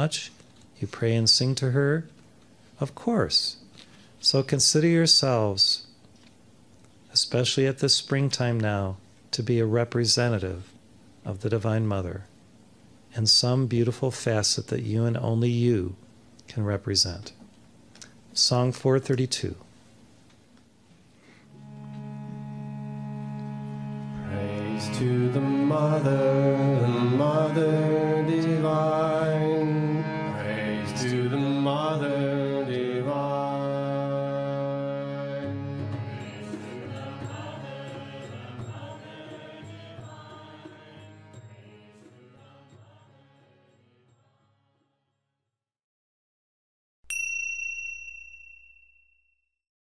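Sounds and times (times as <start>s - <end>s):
mantra chant melody: 24.0s - 44.9s
high bell chime ringing: 47.1s - 49.5s.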